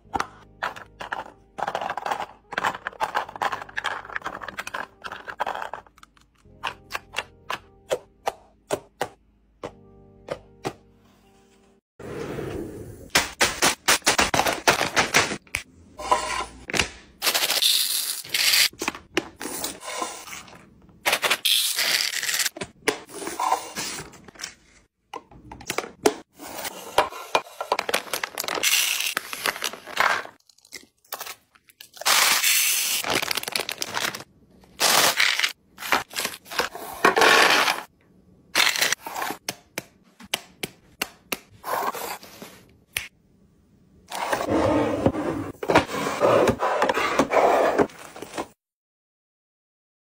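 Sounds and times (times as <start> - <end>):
packaging crackling and scraping: 26.4 - 37.9.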